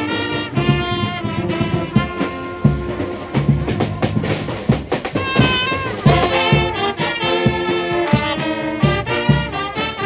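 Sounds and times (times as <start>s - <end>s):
held high brass note: 0.0s - 4.2s, 5.2s - 10.0s
drum beats: 0.0s - 10.0s
military brass band playing: 0.0s - 10.0s.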